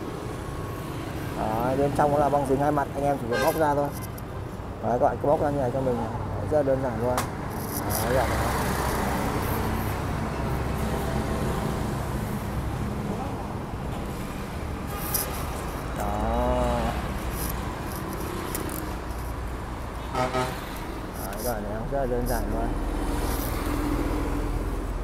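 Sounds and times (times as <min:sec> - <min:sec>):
street traffic rumble: 0:00.0 - 0:25.0
wavering horn toot: 0:03.3 - 0:04.2, 0:20.1 - 0:20.6.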